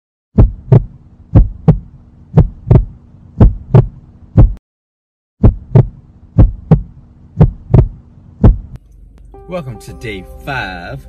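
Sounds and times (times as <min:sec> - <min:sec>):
heartbeat thumps: 0:00.4 - 0:04.6, 0:05.4 - 0:08.8
faint steady hum: 0:05.5 - 0:11.0.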